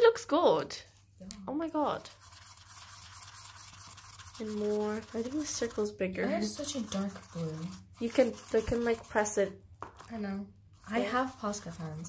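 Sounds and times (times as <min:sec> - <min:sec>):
marker scratching on cardboard: 0:02.0 - 0:10.1, 0:10.7 - 0:12.0.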